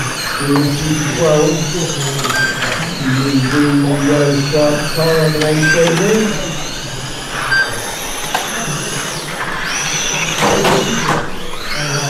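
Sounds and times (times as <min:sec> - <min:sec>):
electric toy car motors whining: 0:00.0 - 0:12.0.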